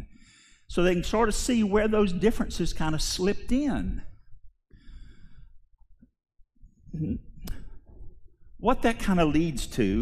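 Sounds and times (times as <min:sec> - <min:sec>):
man breathing into microphone: 0:04.7 - 0:05.6.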